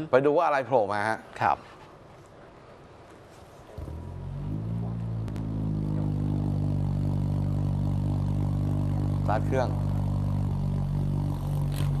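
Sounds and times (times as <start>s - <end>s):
car engine idling: 3.8s - 12.0s.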